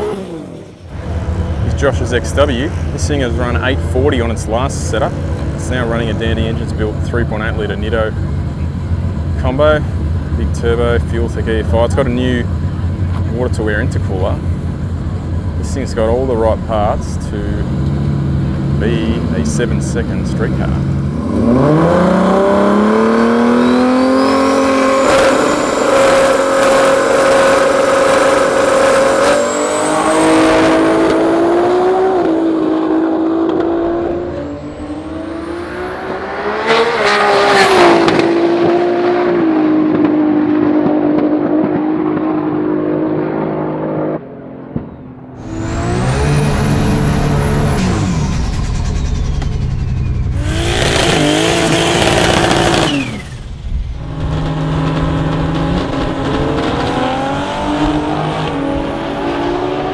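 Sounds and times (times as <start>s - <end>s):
car engine revving: 0.0s - 59.9s
turbo whistle: 47.8s - 51.2s.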